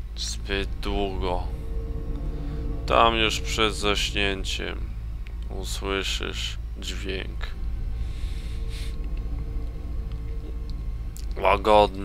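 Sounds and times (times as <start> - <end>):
faint held tones: 0.0 - 6.7, 7.4 - 12.0
low rumbling drone: 0.0 - 12.0.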